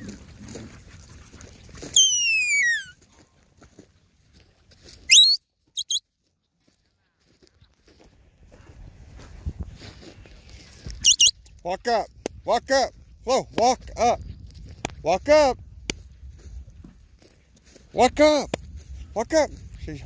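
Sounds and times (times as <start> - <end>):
person whistling commands: 2.0 - 2.9, 5.1 - 6.0, 11.0 - 11.3.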